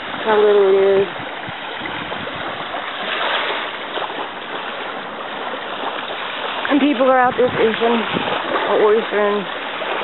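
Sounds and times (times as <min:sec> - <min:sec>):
waves washing onto shore: 0:00.0 - 0:10.0.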